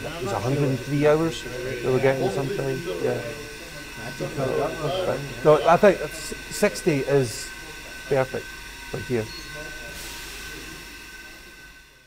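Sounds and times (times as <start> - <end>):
machinery hiss and hum: 0.0 - 12.0
thin high steady tone: 0.0 - 12.0.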